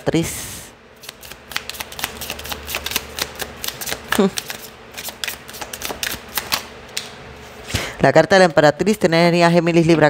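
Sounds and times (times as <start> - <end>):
cards being shuffled: 1.0 - 7.1.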